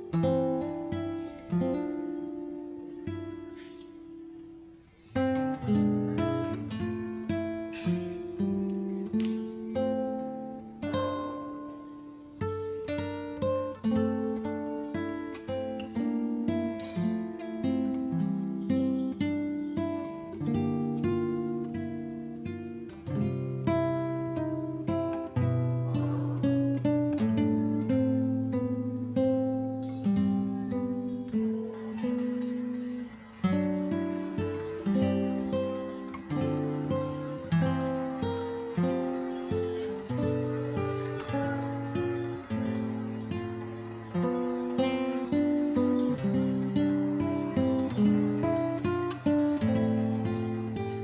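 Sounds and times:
acoustic guitar playing: 0.0s - 51.0s.

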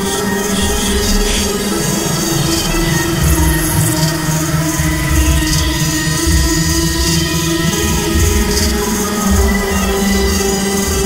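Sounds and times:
synthesizer drones: 0.0s - 11.0s
pulsing low beat: 0.5s - 11.0s.

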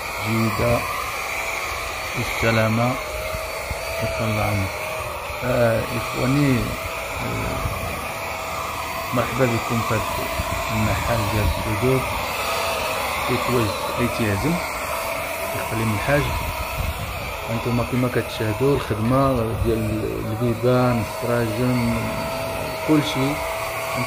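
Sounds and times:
electric paint spray gun whining: 0.0s - 24.0s
men talking: 0.2s - 0.9s, 2.2s - 3.0s, 4.0s - 4.8s, 5.4s - 8.3s, 9.0s - 12.3s, 13.2s - 14.7s, 15.5s - 16.5s, 17.3s - 24.0s.

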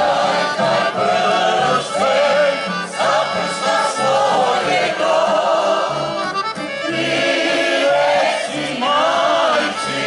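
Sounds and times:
accordion: 0.0s - 10.0s
mixed choir singing: 0.0s - 10.0s.

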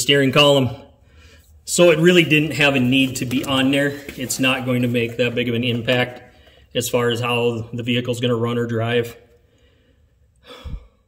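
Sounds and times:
man speaking: 0.0s - 0.9s, 1.7s - 9.3s
man exhaling: 9.5s - 11.0s.

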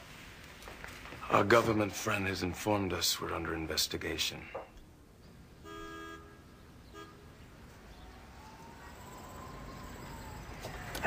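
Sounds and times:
street traffic rumble: 0.0s - 11.0s
car horn tooting: 5.6s - 7.3s
distant siren: 5.6s - 11.0s.

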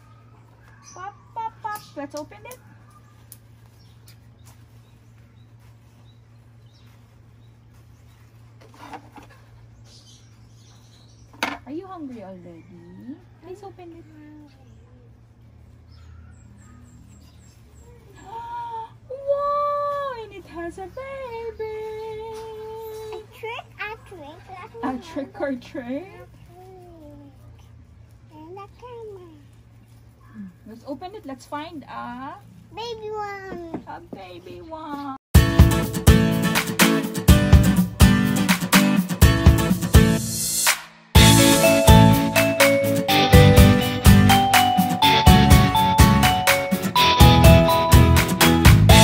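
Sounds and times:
faint bird chirps: 15.8s - 18.7s.

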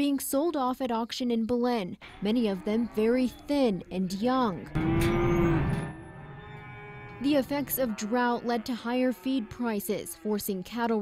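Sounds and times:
cow mooing: 2.0s - 10.8s.

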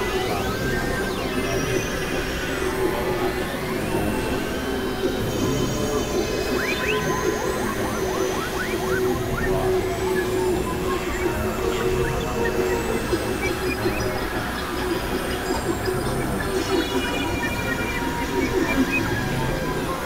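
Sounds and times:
synthesizer drone: 0.0s - 20.0s.

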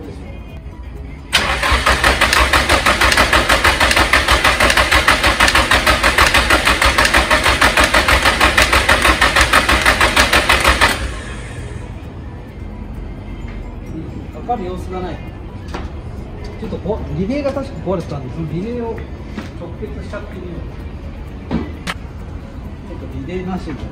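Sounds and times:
starter cranking engine: 1.3s - 11.8s
fast even engine clicking: 1.4s - 11.5s.

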